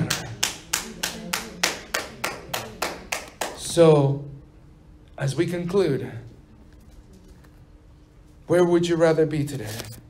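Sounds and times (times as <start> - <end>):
hand clapping: 0.0 - 3.8.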